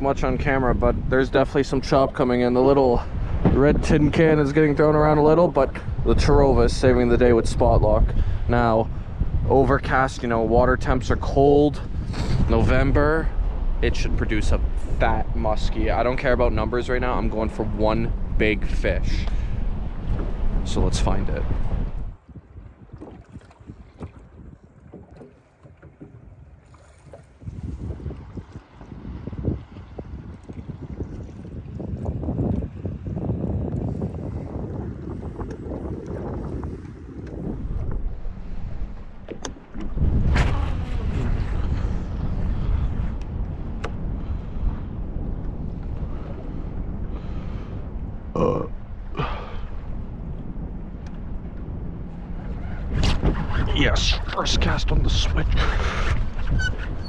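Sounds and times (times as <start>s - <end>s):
low rumbling noise: 0.0s - 23.0s, 27.4s - 57.0s
wind buffeting microphone: 0.0s - 57.0s.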